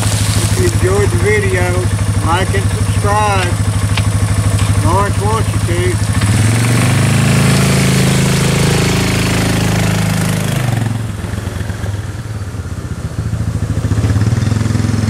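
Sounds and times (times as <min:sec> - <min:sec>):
quad bike engine pulling away: 0:00.0 - 0:15.0.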